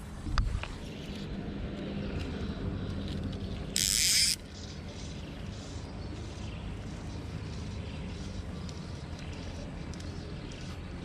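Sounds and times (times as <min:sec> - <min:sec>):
low motor hum: 0:00.0 - 0:11.0
fly reel ratchet buzzing: 0:03.3 - 0:04.5
small clicks: 0:08.6 - 0:10.8.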